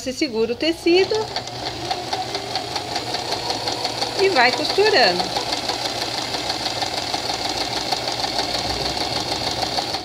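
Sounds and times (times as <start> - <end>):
electric sewing machine running: 0.0 - 10.0.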